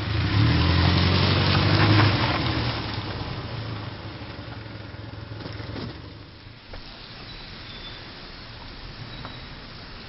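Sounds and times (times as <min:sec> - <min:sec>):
car engine humming: 0:00.0 - 0:10.0.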